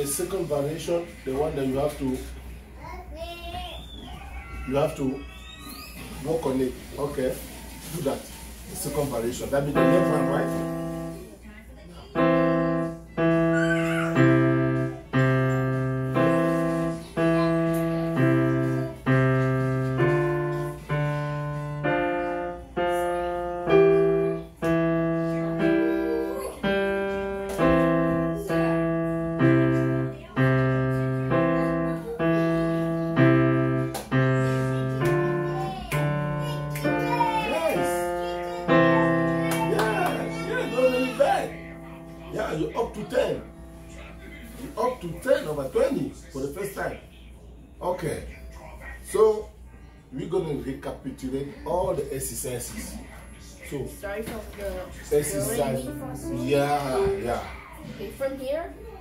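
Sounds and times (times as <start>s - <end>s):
digital piano single notes and chords: 9.5s - 11.3s, 12.1s - 44.3s, 55.4s - 57.4s.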